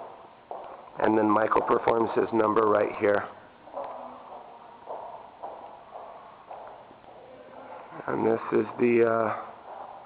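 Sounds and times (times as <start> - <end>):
footsteps on tiled floor: 0.0 - 2.1, 3.7 - 7.9, 9.2 - 10.0.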